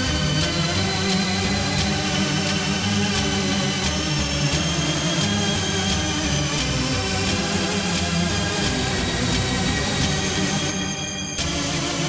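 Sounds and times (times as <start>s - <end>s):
extratone electronic music: 0.0s - 12.0s.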